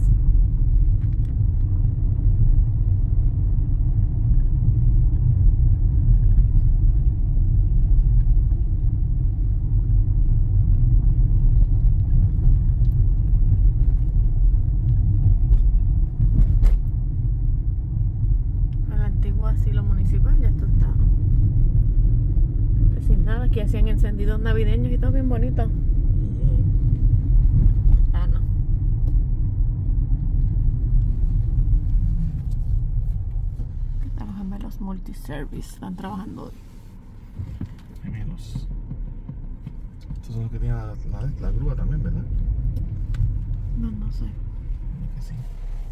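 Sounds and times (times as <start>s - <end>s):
car engine and tyre rumble: 0.0s - 45.9s.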